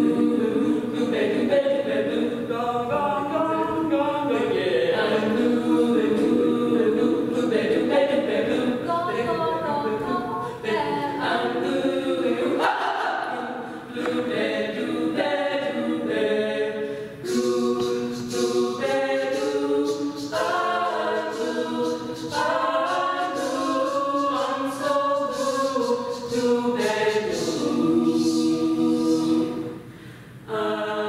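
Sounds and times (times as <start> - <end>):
women singing in close harmony: 0.0 - 29.9, 30.5 - 31.0.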